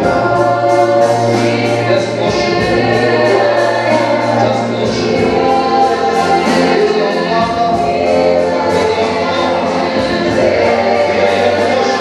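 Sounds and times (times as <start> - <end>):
group singing gospel song: 0.0 - 12.0
instrumental accompaniment with beat: 0.0 - 12.0.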